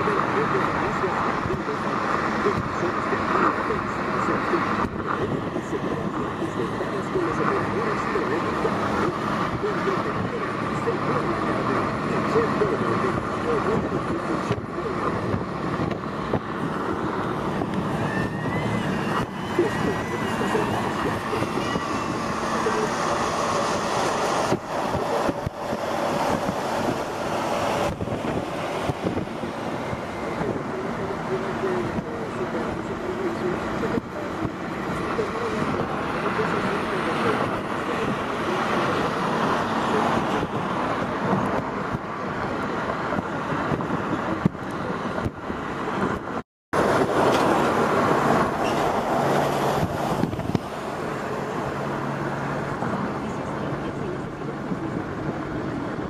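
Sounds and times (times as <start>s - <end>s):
indistinct voices: 0.0s - 43.0s
car road and engine noise: 0.0s - 56.0s.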